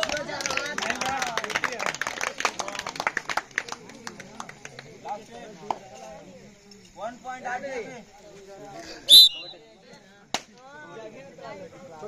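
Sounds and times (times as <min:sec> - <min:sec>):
rapid hand claps: 0:00.0 - 0:05.8.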